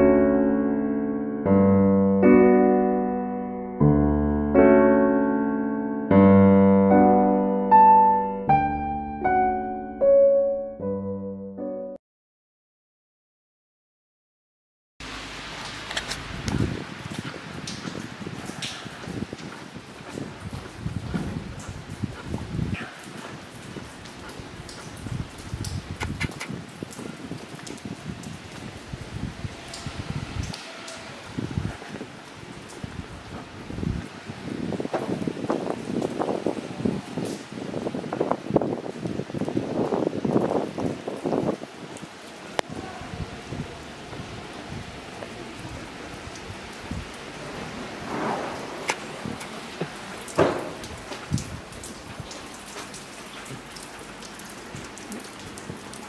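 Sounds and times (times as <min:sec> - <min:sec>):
rain dripping on stone paving: 0:15.0 - 0:56.0.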